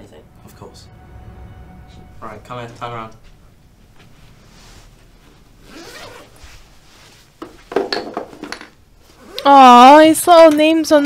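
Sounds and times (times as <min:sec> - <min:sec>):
bag rasping and rustling: 0:04.4 - 0:07.5
zipper being pulled open: 0:05.6 - 0:06.7, 0:09.1 - 0:09.6.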